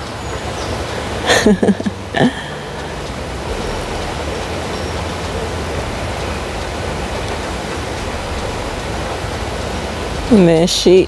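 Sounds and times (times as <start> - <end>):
low rumble: 0.0 - 11.0
steady rushing outdoor noise: 0.0 - 11.0.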